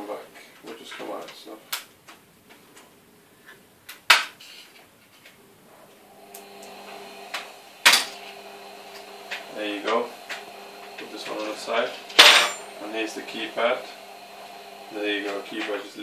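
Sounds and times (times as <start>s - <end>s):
steady hum: 6.0s - 16.0s.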